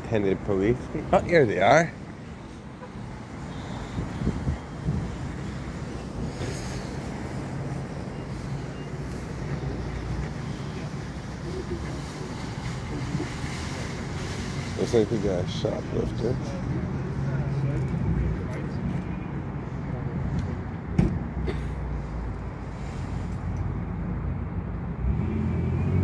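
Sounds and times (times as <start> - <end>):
vehicles rumbling: 0.0 - 26.0
wind on microphone: 3.8 - 6.5.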